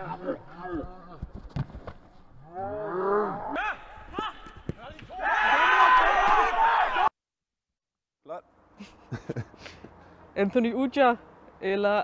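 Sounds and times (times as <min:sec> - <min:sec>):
footballers shouting: 0:03.6 - 0:07.1
cheers: 0:05.1 - 0:07.1.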